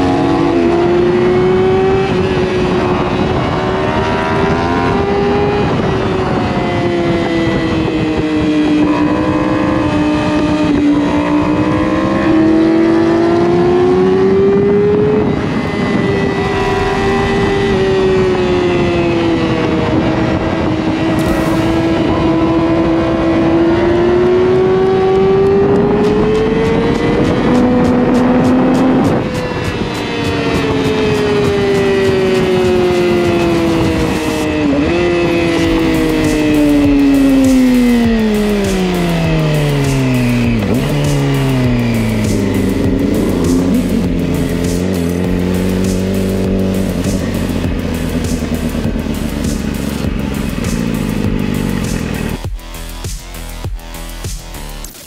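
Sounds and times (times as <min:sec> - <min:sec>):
wind rush: 0:00.0 - 0:12.8, 0:13.7 - 0:48.9
motorcycle engine at high revs: 0:00.0 - 0:55.0.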